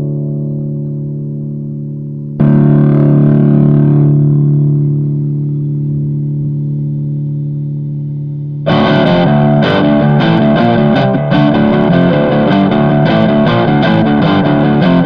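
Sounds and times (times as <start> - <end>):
distorted electric guitar chords: 0.0 - 15.0.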